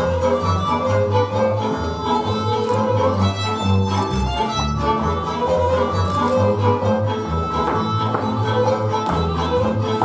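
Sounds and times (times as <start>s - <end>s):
folk dance music on fiddle: 0.0s - 10.0s.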